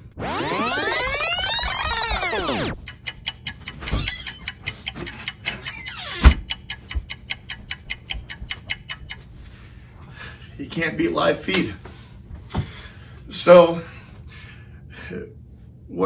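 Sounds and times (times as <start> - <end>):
fast steady ticking: 0.1 - 9.2
door creaking open: 3.7 - 6.6.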